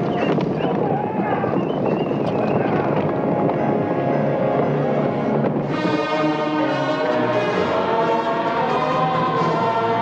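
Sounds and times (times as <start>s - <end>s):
orchestral film score: 3.0s - 10.0s
choir singing sustained notes: 5.0s - 10.0s.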